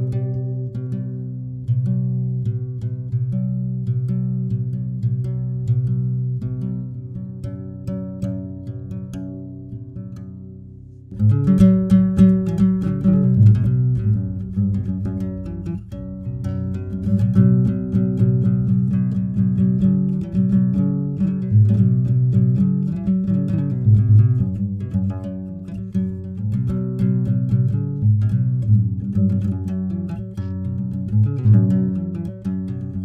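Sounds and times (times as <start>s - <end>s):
acoustic guitar riff: 11.0s - 33.0s.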